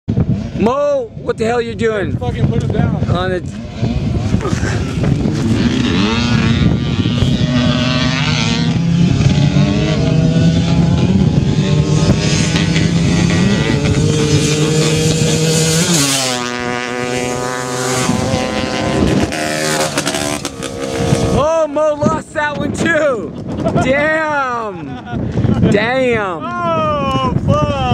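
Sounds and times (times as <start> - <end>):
quad engines at full throttle: 0.1 - 1.3, 1.9 - 25.7.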